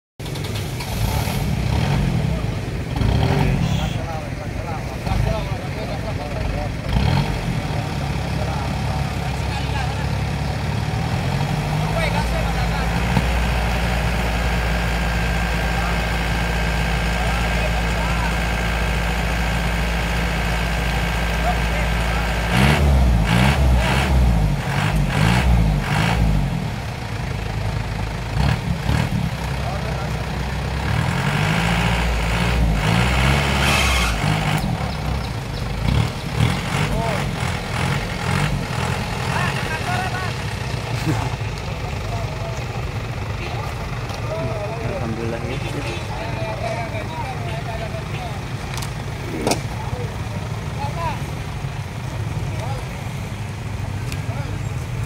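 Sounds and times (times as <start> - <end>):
heavy engine running: 0.2 - 55.0
road noise: 0.2 - 55.0
voices: 0.3 - 55.0.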